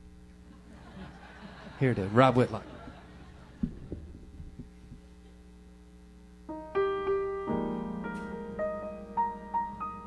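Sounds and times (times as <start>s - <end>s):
solo piano: 6.5s - 10.0s.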